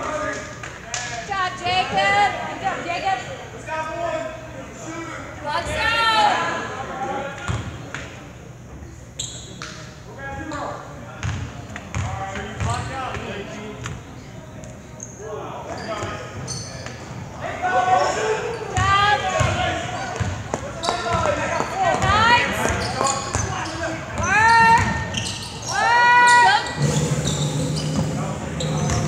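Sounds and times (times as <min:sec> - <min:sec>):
sneaker squeaks: 0:08.8 - 0:09.8, 0:11.9 - 0:13.0, 0:14.2 - 0:17.2, 0:18.0 - 0:29.0
spectators' voices echoing: 0:17.3 - 0:29.0.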